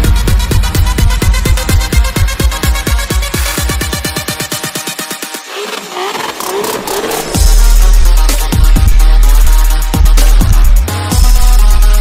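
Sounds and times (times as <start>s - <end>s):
trap music bass hits: 0.0s - 12.0s
car engine sound effect: 5.3s - 9.6s.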